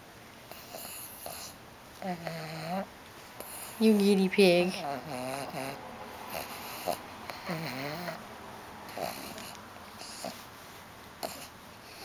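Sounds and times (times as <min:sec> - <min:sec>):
dog grunting and snorting: 0:00.5 - 0:03.8, 0:04.8 - 0:08.3, 0:08.9 - 0:10.5, 0:11.2 - 0:12.0.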